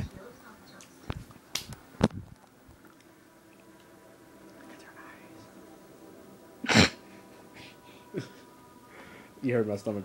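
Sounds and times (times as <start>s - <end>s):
sharp clicks near microphone: 0.8s - 2.3s.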